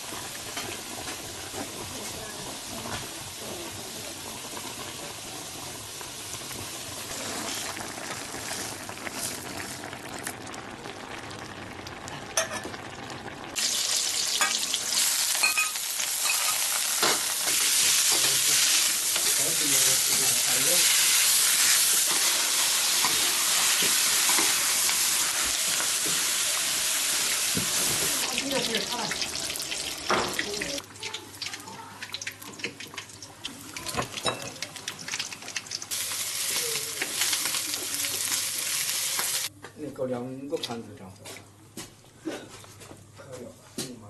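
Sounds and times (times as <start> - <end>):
food simmering: 0.0 - 14.0
food sizzling in hot oil: 0.0 - 39.5.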